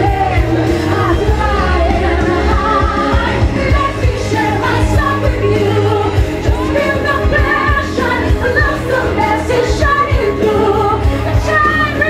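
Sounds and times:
amplified backing music: 0:00.0 - 0:12.0
woman singing into a microphone: 0:00.0 - 0:12.0.

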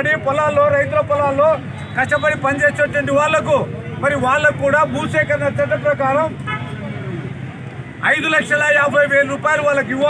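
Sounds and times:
man speaking: 0:00.0 - 0:06.4
low rumble of road traffic: 0:00.0 - 0:10.0.

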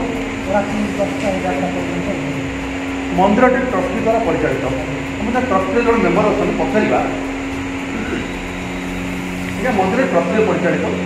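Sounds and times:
mechanical hum: 0:00.0 - 0:11.0.

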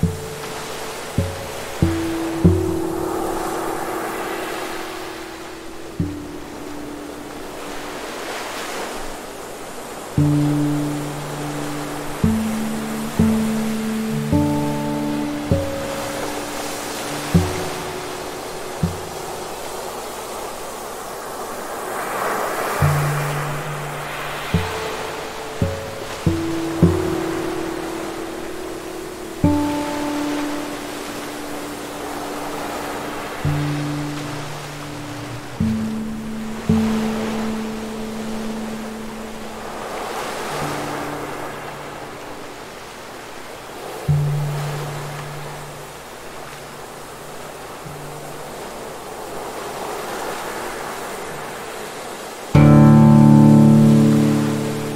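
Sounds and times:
soft acoustic guitar plucking: 0:00.0 - 0:09.1, 0:10.1 - 0:20.1, 0:22.8 - 0:42.6, 0:44.0 - 0:48.6, 0:52.5 - 0:54.9
ocean surf breaking: 0:00.0 - 0:54.9.

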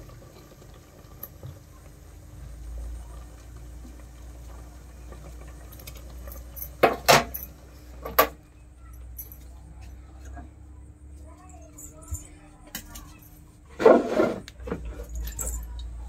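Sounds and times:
gas flame rumble: 0:00.0 - 0:08.8
pot boiling: 0:00.0 - 0:08.8.

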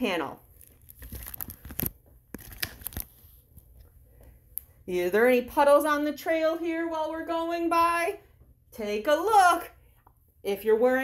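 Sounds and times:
crunching and rustling clicks: 0:00.6 - 0:03.9.

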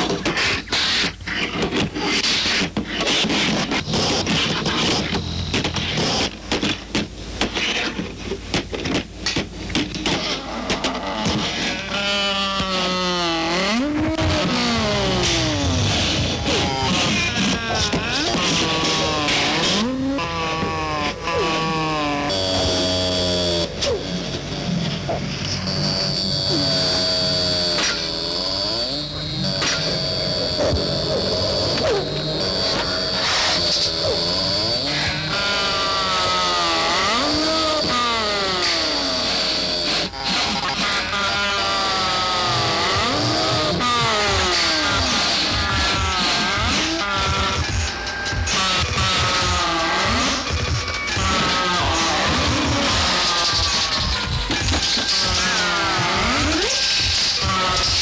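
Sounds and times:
high whine: 0:00.0 - 0:58.0.

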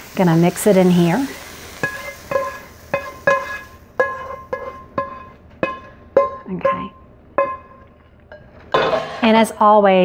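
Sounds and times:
frying pan knocking and ringing: 0:01.8 - 0:09.3.

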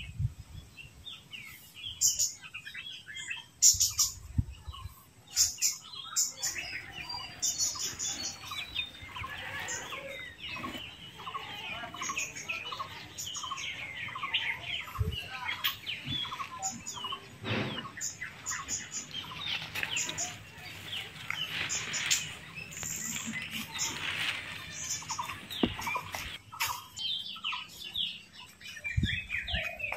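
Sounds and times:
birds chirping: 0:00.0 - 0:29.9.

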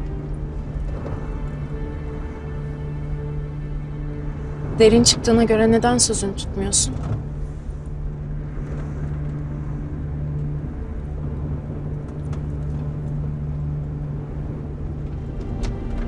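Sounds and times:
car engine drone: 0:00.0 - 0:16.0.

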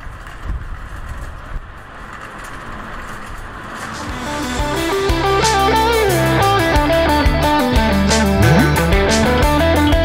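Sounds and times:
shopping cart rolling on asphalt: 0:00.0 - 0:04.2
wind: 0:00.0 - 0:04.6.

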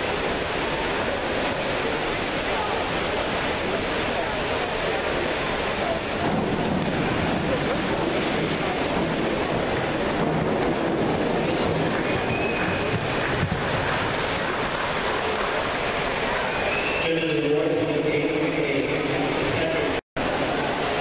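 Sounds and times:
indoor pool hall din: 0:00.0 - 0:21.0.

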